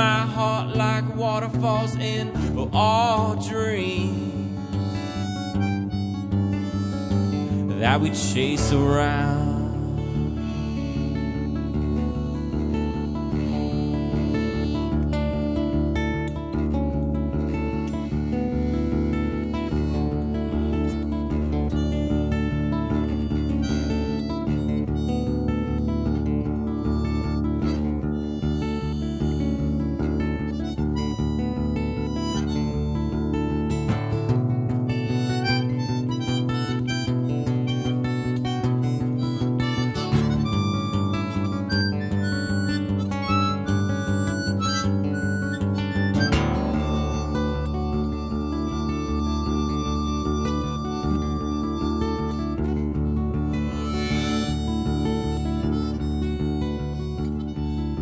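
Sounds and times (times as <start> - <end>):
acoustic guitar accompaniment: 0.0 - 58.0
harmonica solo: 0.0 - 58.0.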